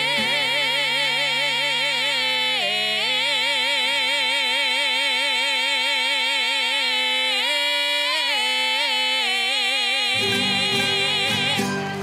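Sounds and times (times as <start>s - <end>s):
man and woman singing duet: 0.0s - 12.0s.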